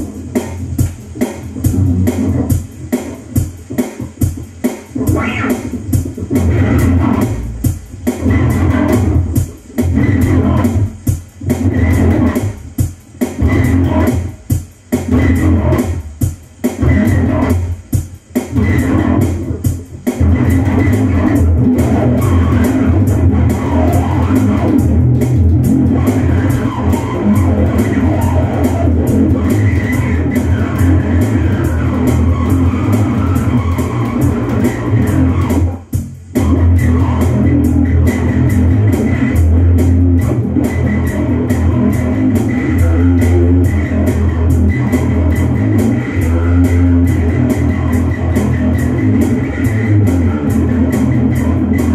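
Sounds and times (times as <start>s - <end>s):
electric bass rock riff: 0.0s - 51.9s.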